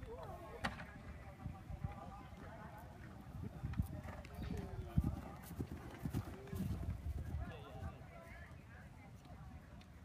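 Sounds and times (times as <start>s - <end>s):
horse hooves thudding on grass: 1.8s - 8.6s.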